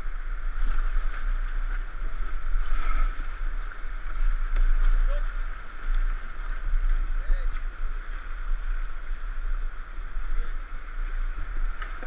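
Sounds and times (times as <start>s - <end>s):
river water rushing: 0.0s - 12.0s
wind rumble on microphone: 0.0s - 12.0s.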